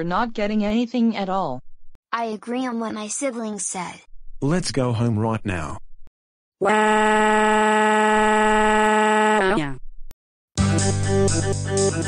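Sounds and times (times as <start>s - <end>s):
buzzer-like electronic tone: 6.6s - 9.6s.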